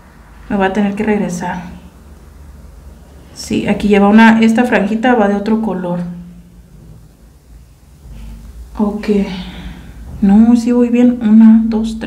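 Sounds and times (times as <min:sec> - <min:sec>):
low steady hum: 0:00.0 - 0:12.0
woman's voice: 0:00.5 - 0:01.9, 0:03.4 - 0:06.3, 0:08.8 - 0:12.0.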